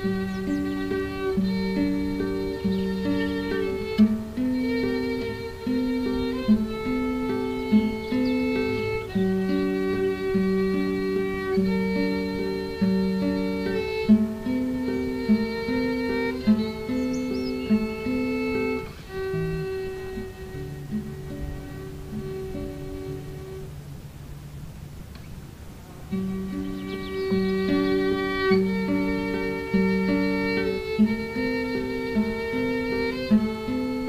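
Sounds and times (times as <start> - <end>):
violin playing: 0.0 - 23.9, 26.1 - 34.0
classical guitar picking notes: 0.0 - 34.0.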